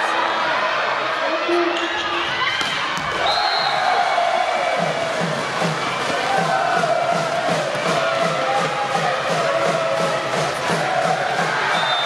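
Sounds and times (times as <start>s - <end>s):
crowd noise: 0.0s - 12.0s
drum beating steadily: 4.6s - 12.0s.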